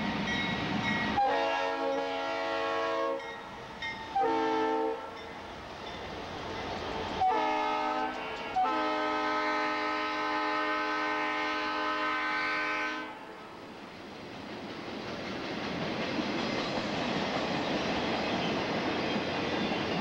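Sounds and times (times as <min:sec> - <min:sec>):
train cars rumbling and clacking: 0:00.0 - 0:02.5, 0:03.1 - 0:10.0, 0:13.6 - 0:20.0
locomotive air horn blasts: 0:01.2 - 0:03.2, 0:04.1 - 0:05.2, 0:07.2 - 0:13.3.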